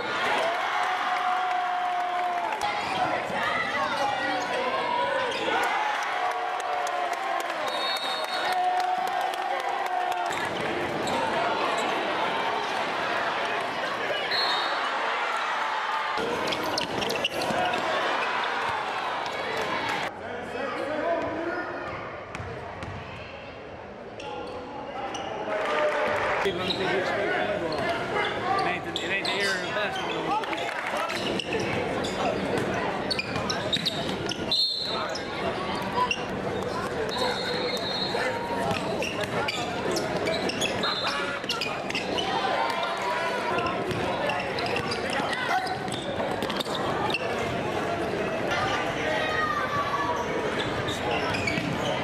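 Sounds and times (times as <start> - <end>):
spectators talking and shouting: 0.0 - 52.0
basketball bouncing on court: 22.3 - 23.0, 43.8 - 45.1, 51.2 - 51.9.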